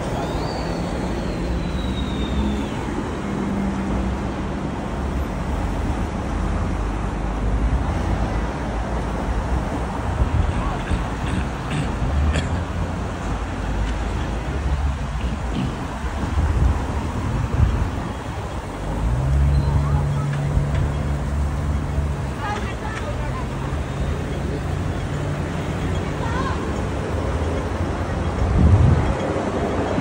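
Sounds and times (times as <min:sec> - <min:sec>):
city street traffic: 0:00.0 - 0:30.0
vehicle engine humming: 0:00.0 - 0:30.0
wind rumbling on microphone: 0:07.7 - 0:21.3, 0:26.2 - 0:30.0.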